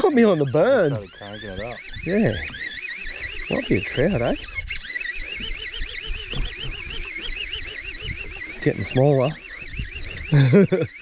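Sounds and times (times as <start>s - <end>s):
warbling high electronic tone: 0.0s - 11.0s.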